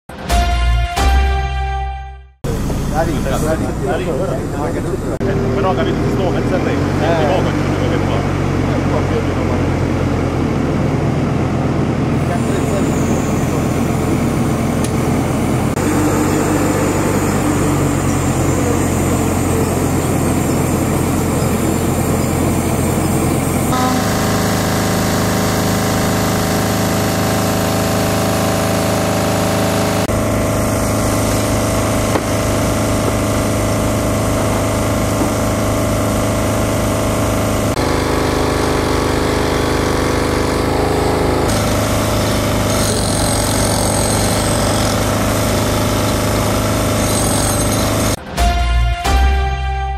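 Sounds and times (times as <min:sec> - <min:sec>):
diesel engine running: 0:02.4 - 0:49.9.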